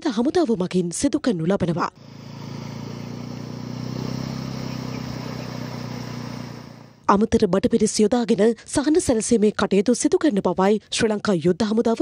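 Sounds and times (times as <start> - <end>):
outboard motor running: 2.0 - 7.0.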